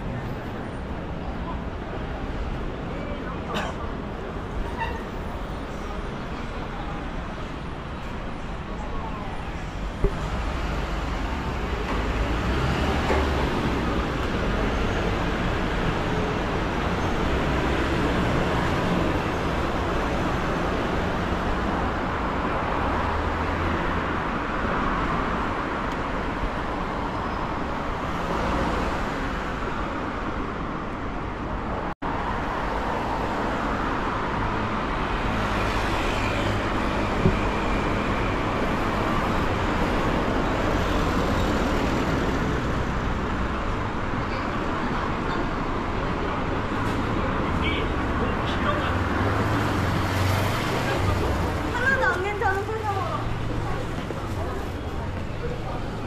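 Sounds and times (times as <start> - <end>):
cars passing on road: 0.0 - 56.0.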